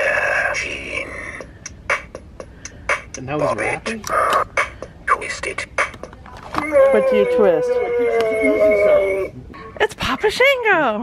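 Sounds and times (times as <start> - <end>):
clicking electronic beat: 1.4 - 6.2.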